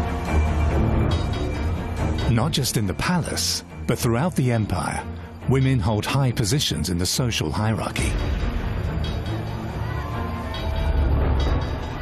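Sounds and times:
deep drone music: 0:00.0 - 0:12.0.

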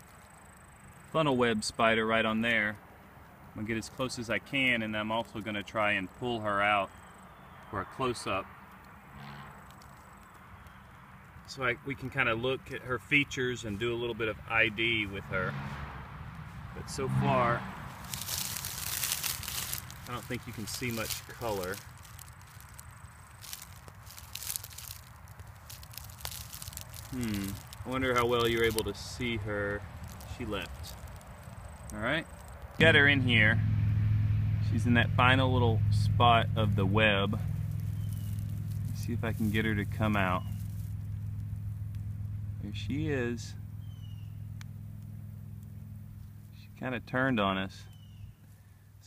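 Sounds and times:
dry grass and leaves rustling: 0:00.0 - 0:49.0
low steady rumble: 0:11.5 - 0:49.0
low mechanical hum: 0:29.8 - 0:46.9.

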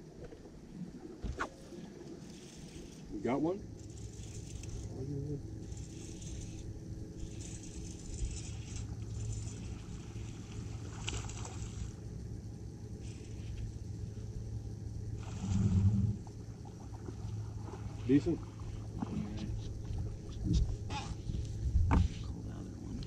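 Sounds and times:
trolling motor hum: 0:00.1 - 0:23.0
wind noise: 0:19.0 - 0:23.0.

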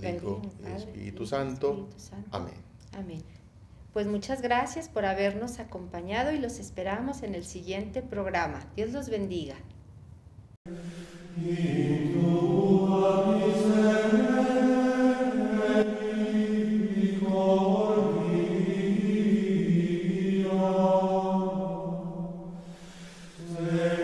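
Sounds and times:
sung chant with long held notes: 0:10.7 - 0:24.0.

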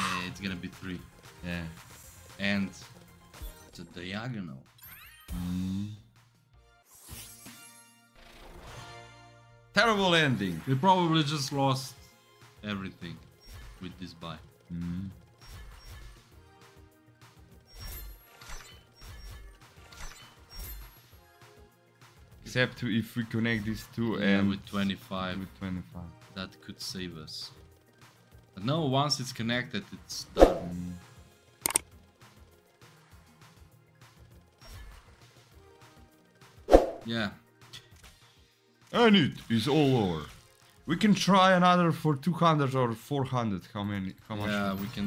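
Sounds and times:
faint game music: 0:00.0 - 0:45.0
game clicks and clunks: 0:31.6 - 0:31.9.

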